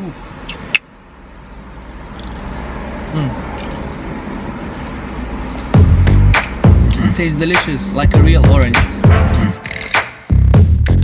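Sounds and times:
loud bass-heavy music: 0:05.8 - 0:11.0.

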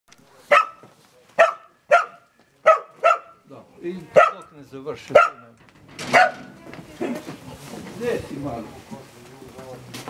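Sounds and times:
dog barking: 0:00.4 - 0:03.4, 0:04.1 - 0:04.5, 0:05.1 - 0:05.5, 0:06.1 - 0:06.6.

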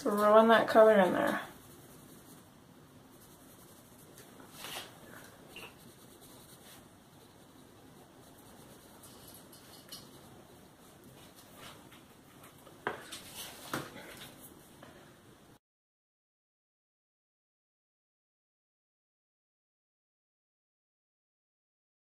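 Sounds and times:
crayon scratching on paper: 0:00.7 - 0:04.9, 0:05.5 - 0:11.9.

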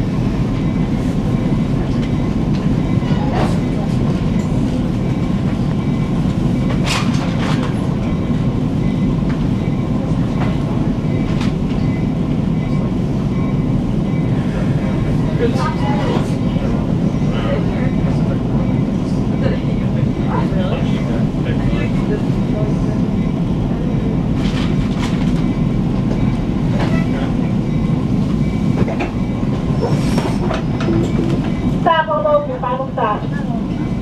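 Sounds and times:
train wheels rumbling: 0:00.0 - 0:34.0.

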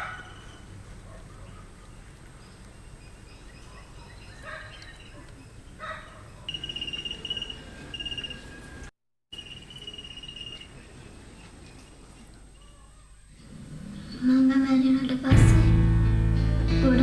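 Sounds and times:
birds chirping and trilling: 0:00.0 - 0:15.2.

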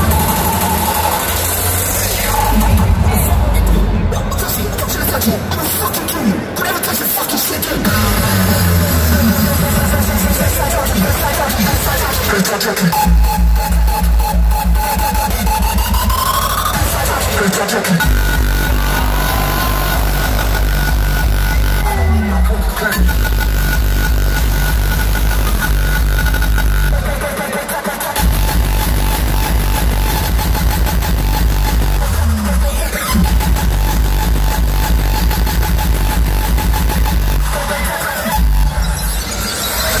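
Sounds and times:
hardstyle dance music: 0:00.0 - 0:40.0.

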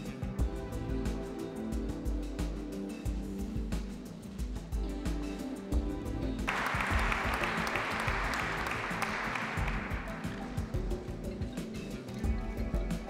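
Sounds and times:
background music: 0:00.0 - 0:13.0
audience applause: 0:06.5 - 0:10.9.

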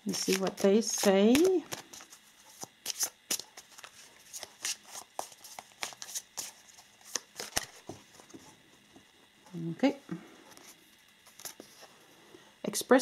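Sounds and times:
cards being shuffled by hand: 0:00.0 - 0:08.9, 0:10.5 - 0:11.9.

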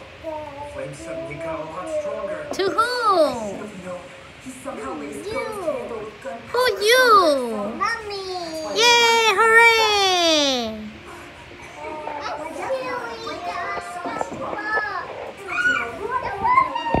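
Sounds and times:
small children babbling: 0:06.6 - 0:11.0.

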